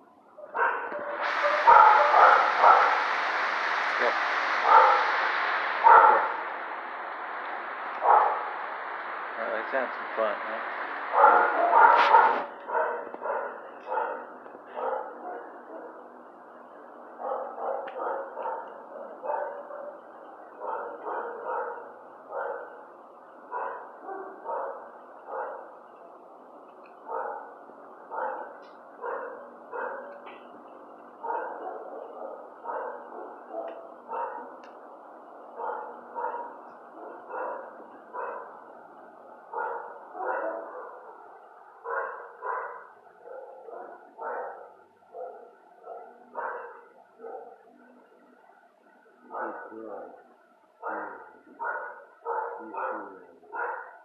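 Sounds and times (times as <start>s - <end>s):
dogs barking: 0.4s - 3.0s, 4.7s - 5.1s, 5.8s - 6.4s, 8.0s - 8.4s, 11.1s - 16.0s, 17.2s - 22.9s, 23.5s - 25.8s, 27.0s - 30.4s, 31.2s - 34.6s, 35.5s - 38.7s, 39.4s - 47.8s, 49.3s - 54.0s.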